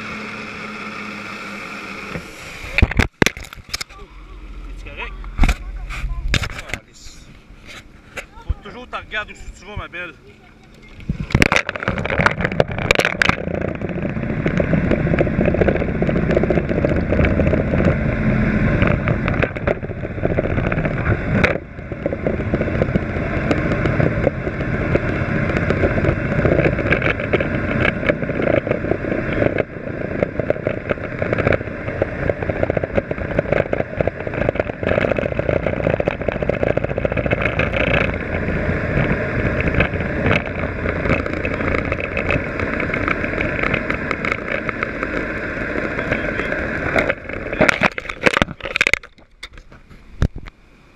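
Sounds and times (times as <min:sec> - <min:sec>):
muffled jet ski engine running: 0:00.0 - 0:50.9
rubbing and knocking on microphone: 0:05.2 - 0:09.9, 0:10.9 - 0:50.5.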